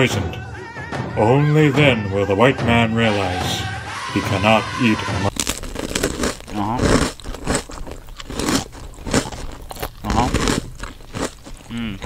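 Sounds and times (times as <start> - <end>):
person chewing crunchy food: 5.3 - 12.0
person humming: 11.7 - 12.0.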